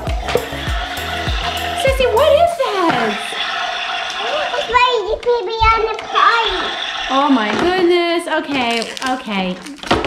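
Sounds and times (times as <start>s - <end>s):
high child-like voice speaking: 4.2s - 6.8s.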